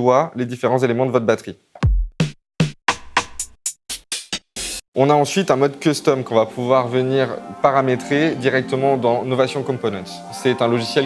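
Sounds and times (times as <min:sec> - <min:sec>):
electronic drum hits: 0:01.8 - 0:03.5.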